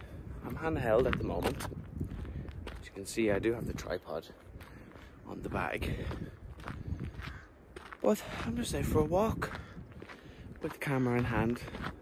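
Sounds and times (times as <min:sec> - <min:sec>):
footsteps on rough path: 0:00.0 - 0:12.0
wind buffeting microphone: 0:00.0 - 0:12.0.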